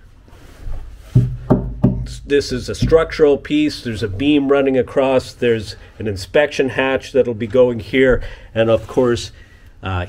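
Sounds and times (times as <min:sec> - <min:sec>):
hand knocking on plywood: 0:01.2 - 0:02.2.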